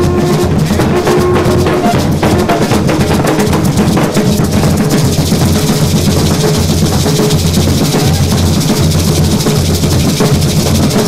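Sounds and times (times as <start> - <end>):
drum music: 0.0 - 11.0
maracas rattling: 0.0 - 11.0.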